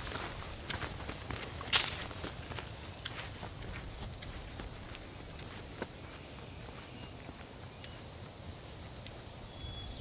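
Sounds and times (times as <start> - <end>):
footsteps crunching on dirt trail: 0.0 - 9.3.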